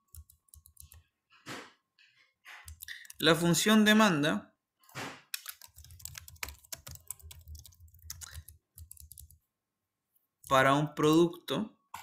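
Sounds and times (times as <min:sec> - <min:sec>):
keyboard typing clicks: 0:00.0 - 0:01.0, 0:02.6 - 0:03.2, 0:05.3 - 0:09.4.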